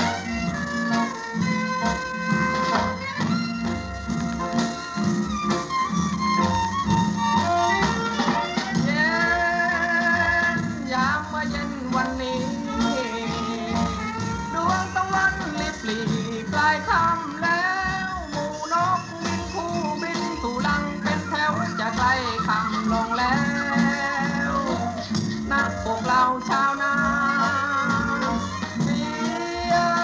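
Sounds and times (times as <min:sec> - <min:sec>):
song with sliding melody and beat: 0:00.0 - 0:30.0.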